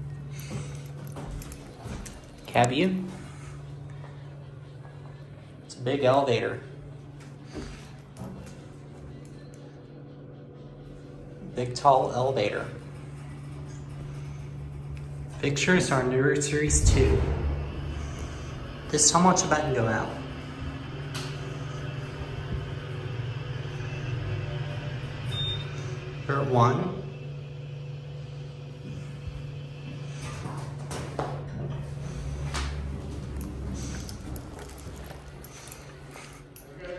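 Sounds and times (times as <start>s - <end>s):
elevator machine hum: 0.0s - 36.9s.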